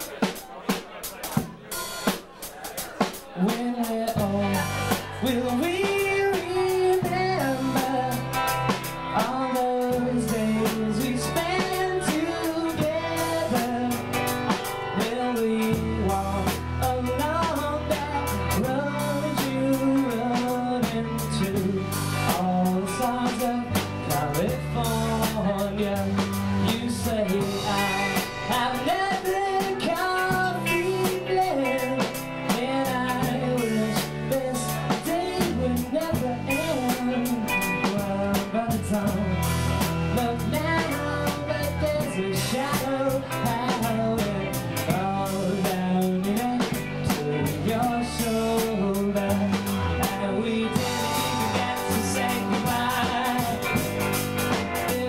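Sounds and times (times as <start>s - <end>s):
drum kit beat: 0.0s - 55.0s
sung lead vocal: 0.0s - 55.0s
guitars: 3.0s - 55.0s
bass line: 3.4s - 55.0s.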